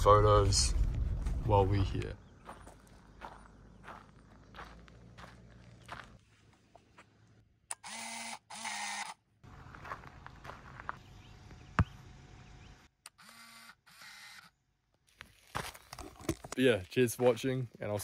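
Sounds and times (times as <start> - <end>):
footsteps on gravel: 0.8 - 6.6, 9.4 - 11.2, 15.1 - 18.0
camera mechanism whirring: 7.7 - 9.2, 13.0 - 14.5.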